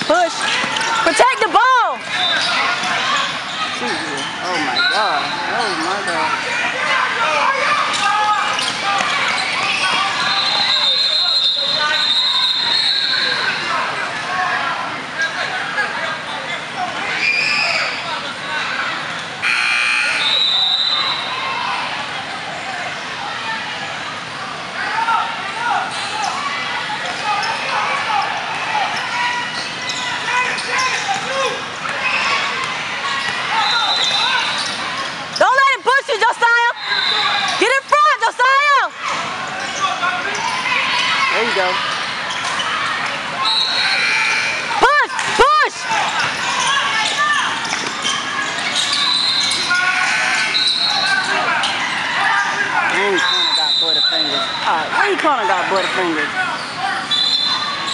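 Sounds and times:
sneaker squeaks: 0.0s - 6.7s, 7.6s - 14.3s, 25.9s - 35.8s, 36.7s - 38.2s, 39.0s - 45.3s, 45.9s - 54.9s, 55.5s - 57.9s
people talking and calling out: 0.0s - 57.9s.

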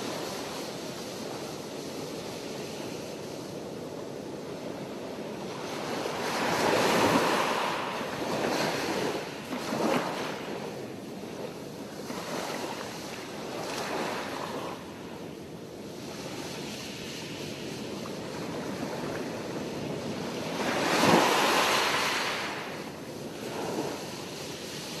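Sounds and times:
waves breaking on shore: 0.0s - 25.0s.

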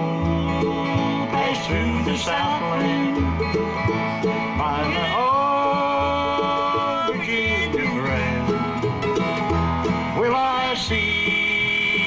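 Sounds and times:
bluegrass band playing: 0.0s - 12.0s
upright bass: 0.0s - 12.0s.

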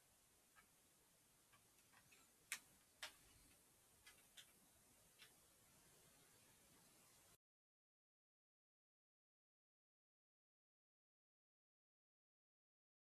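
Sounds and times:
faint clicks: 1.5s - 5.4s.

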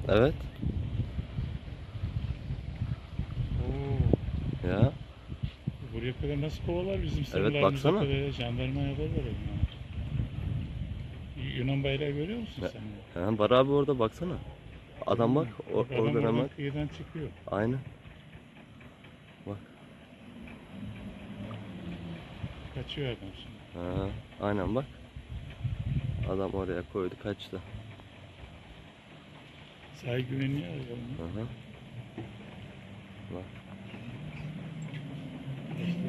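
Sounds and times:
distant boat engines droning: 0.0s - 36.0s
faint outdoor background noise: 0.0s - 36.0s.

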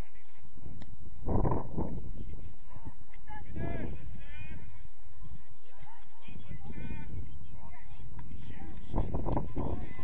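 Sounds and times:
wind rumbling on microphone: 0.0s - 10.0s
players and coaches shouting: 2.7s - 7.5s.

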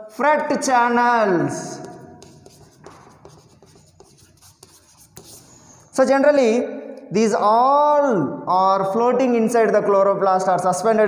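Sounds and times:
chalk scratching on chalkboard: 1.6s - 6.0s.

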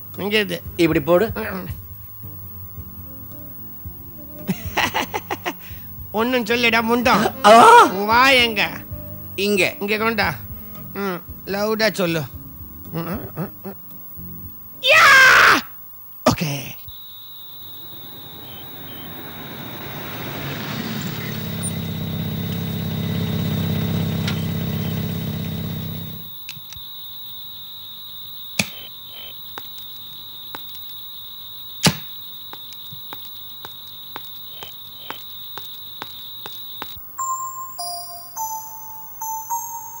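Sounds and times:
steady high-pitched tone: 17.2s - 21.6s, 37.1s - 40.0s
car engine running: 17.6s - 26.3s.

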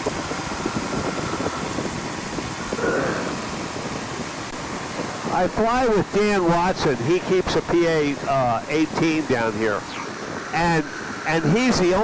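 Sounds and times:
wind rushing past cabin: 0.0s - 5.7s
airplane engine and propeller: 0.0s - 12.0s.

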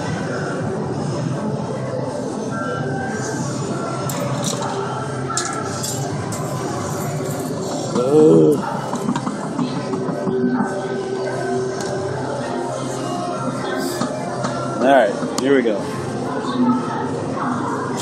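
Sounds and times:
chatter in a large hall: 0.0s - 18.0s.

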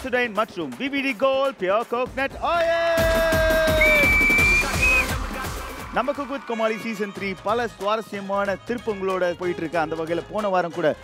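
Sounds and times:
high whistle: 3.6s - 5.5s.

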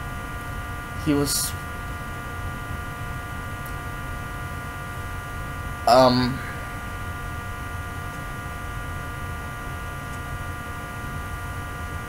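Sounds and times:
electrical hum: 0.0s - 12.0s
man saying um: 1.0s - 1.6s, 5.9s - 6.6s.

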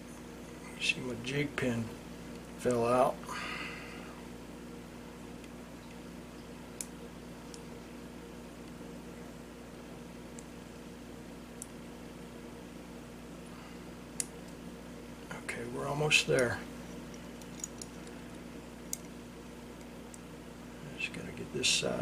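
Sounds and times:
low electrical hum: 0.0s - 22.0s
small steel parts clicking: 17.4s - 18.2s.

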